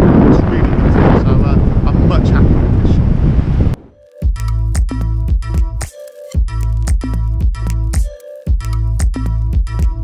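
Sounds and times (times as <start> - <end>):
wind buffeting microphone: 0.0 - 3.9
music with bass and beat: 3.9 - 10.0.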